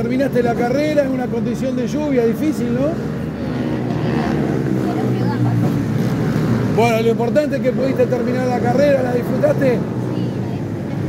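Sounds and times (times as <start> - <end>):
kart engines running: 0.0 - 11.0.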